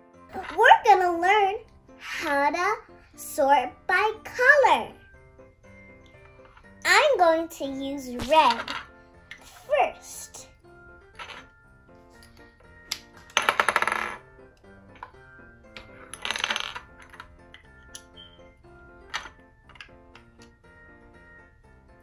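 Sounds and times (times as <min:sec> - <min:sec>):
plastic pegs clattering: 0:08.2 - 0:09.4, 0:11.2 - 0:11.5, 0:14.9 - 0:18.1, 0:19.0 - 0:20.5
plastic pegs clicking together: 0:12.3 - 0:13.7.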